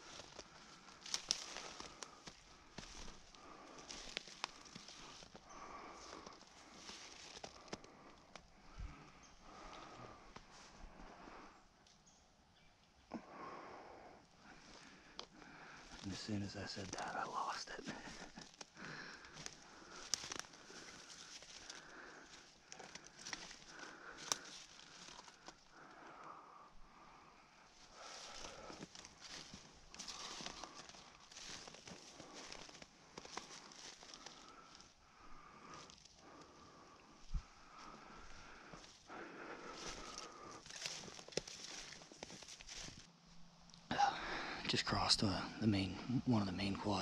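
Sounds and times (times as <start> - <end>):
footsteps crunching through snow: 0.0 - 8.0, 15.9 - 25.6, 27.8 - 34.9, 35.7 - 43.1
twigs snapping: 0.0 - 8.5, 17.9 - 25.9, 28.0 - 34.8, 37.7 - 43.0.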